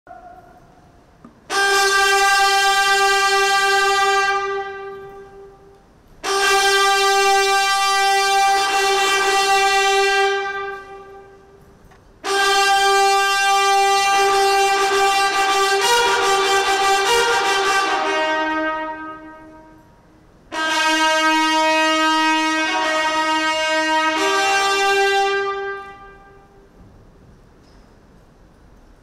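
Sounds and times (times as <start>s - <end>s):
brass fanfare: 1.5s - 26.8s.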